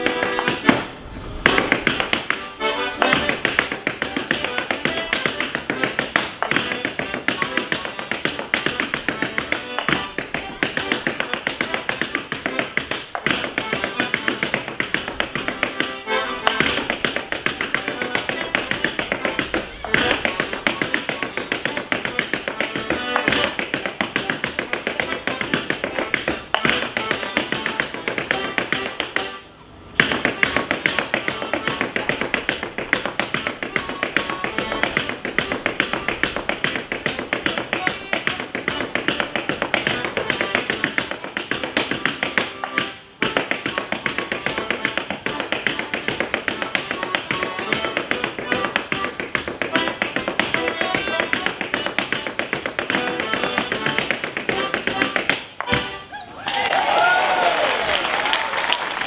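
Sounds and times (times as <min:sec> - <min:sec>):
accordion playing: 0:00.0 - 0:56.3
clogs tapping on stage floor: 0:30.0 - 0:55.9.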